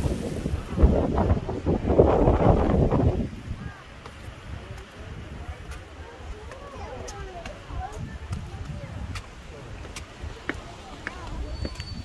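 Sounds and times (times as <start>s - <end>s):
faint voices: 0.0s - 12.0s
wind buffeting microphone: 0.0s - 12.0s
footfalls on stone steps: 5.6s - 12.0s.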